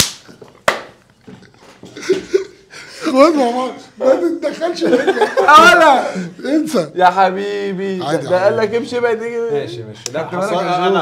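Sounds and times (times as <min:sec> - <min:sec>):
sharp hand claps: 0:00.0 - 0:01.0
laughter: 0:01.8 - 0:03.4, 0:04.2 - 0:06.2.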